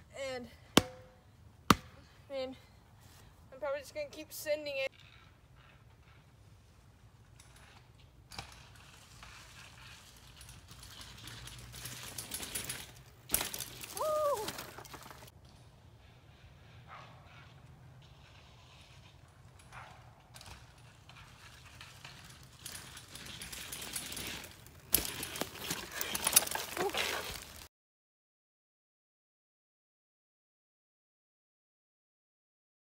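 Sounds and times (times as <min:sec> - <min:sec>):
bike tyres crunching dry leaves: 0:08.9 - 0:15.3, 0:20.8 - 0:27.7.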